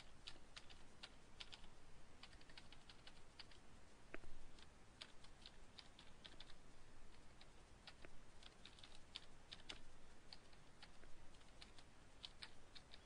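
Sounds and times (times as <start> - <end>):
typing on keyboard: 0.1 - 3.6, 4.6 - 13.0.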